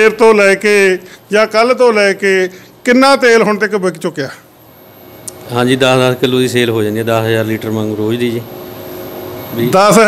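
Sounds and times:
man talking: 0.0 - 4.5, 5.4 - 8.5, 9.5 - 10.0
background hiss with faint hum: 0.0 - 10.0.

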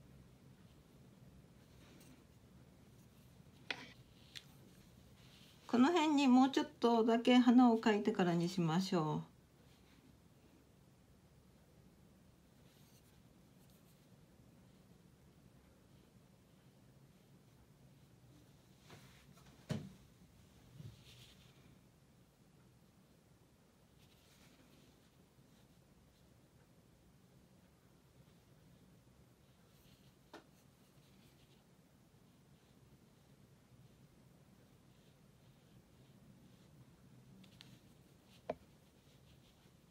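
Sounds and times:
ink brush scratching on paper: 0.5 - 6.1, 12.5 - 19.2, 20.9 - 21.8, 23.9 - 26.4, 27.9 - 39.9.

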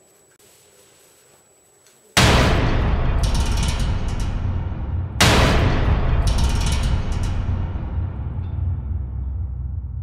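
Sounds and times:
deep low rumble: 2.4 - 10.0
mechanical clicking and rattling: 2.6 - 8.4.

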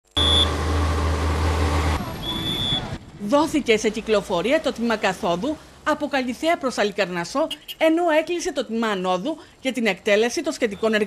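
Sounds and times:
traffic low rumble: 0.2 - 11.0.

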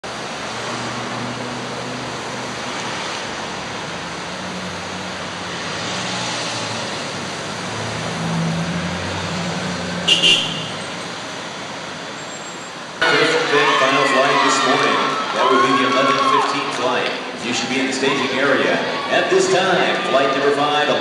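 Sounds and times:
street traffic hum: 0.0 - 21.0.

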